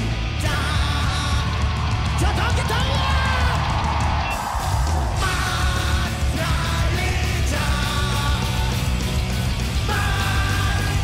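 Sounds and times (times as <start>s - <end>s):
drum kit: 0.0s - 11.0s
punk rock band playing: 0.0s - 11.0s.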